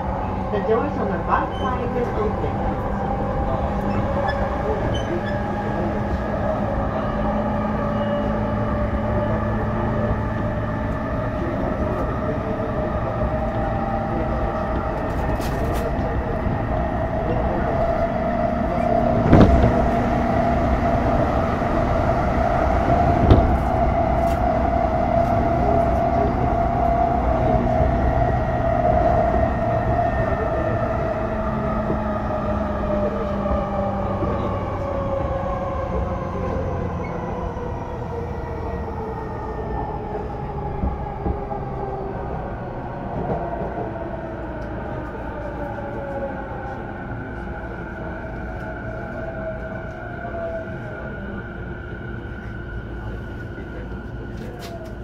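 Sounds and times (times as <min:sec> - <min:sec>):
wheel and track rumble: 0:00.0 - 0:55.0.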